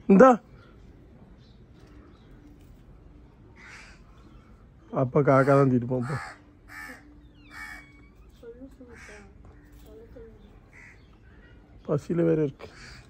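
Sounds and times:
crows cawing: 3.5 - 4.5, 5.2 - 8.2, 8.8 - 9.9, 10.7 - 11.6, 12.6 - 13.0.

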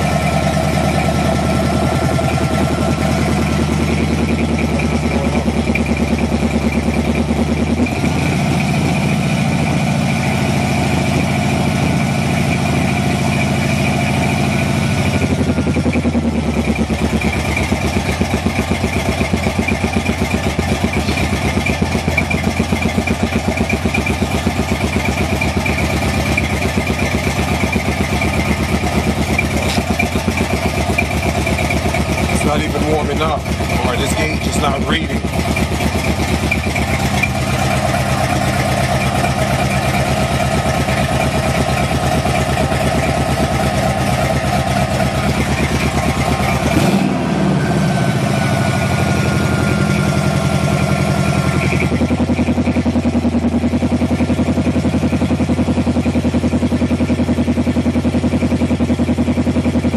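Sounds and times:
car engine idling: 0.0 - 59.9.

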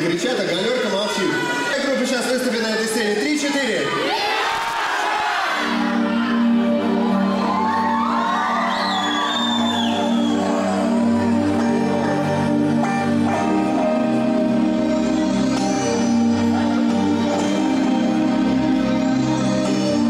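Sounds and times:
audience shouting and cheering: 0.4 - 20.0
synthesizer chords: 5.3 - 20.0
whoops: 6.4 - 11.3
high gliding whistle: 8.1 - 11.0.

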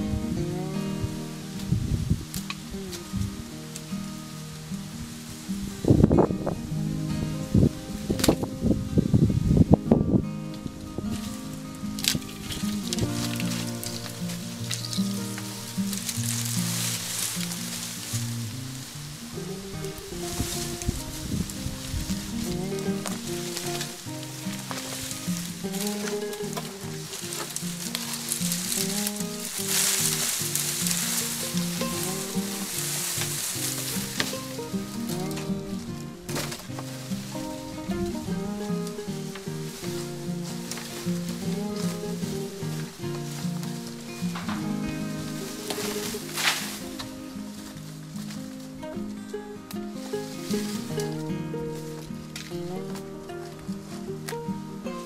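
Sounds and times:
background music with held notes: 0.0 - 55.0
dry canes and leaves rustling: 0.0 - 55.0
sharp snaps of canes: 45.7 - 47.2.

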